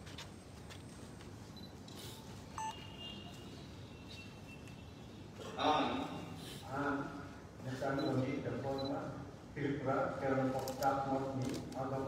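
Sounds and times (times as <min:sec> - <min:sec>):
faint hall room noise: 0:00.0 - 0:12.0
short electronic beep: 0:02.6 - 0:02.8.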